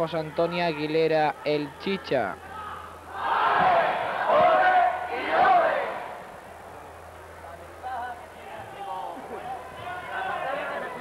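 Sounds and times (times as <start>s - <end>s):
crowd shouting and cheering: 2.4s - 6.4s, 8.5s - 11.0s.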